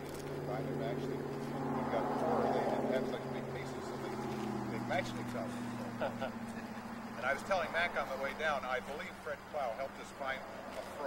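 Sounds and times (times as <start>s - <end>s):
low mechanical drone: 0.0s - 8.9s
man talking: 0.4s - 11.0s.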